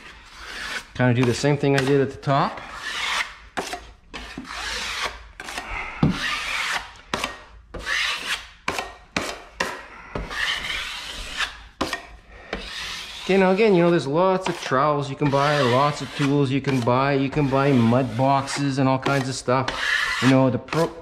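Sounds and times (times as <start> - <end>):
taping knife scraping drywall mud: 0.0 - 21.0.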